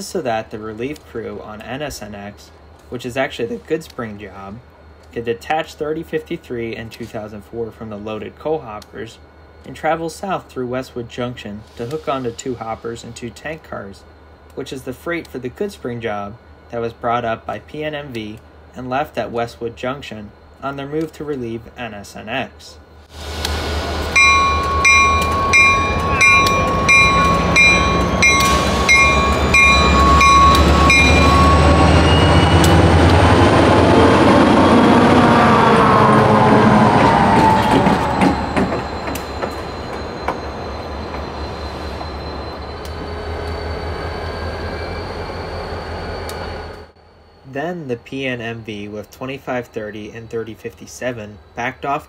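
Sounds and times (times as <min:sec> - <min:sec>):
diesel locomotives passing: 0:00.0 - 0:52.0
locomotive bell ringing: 0:23.9 - 0:37.0, 0:38.0 - 0:49.0.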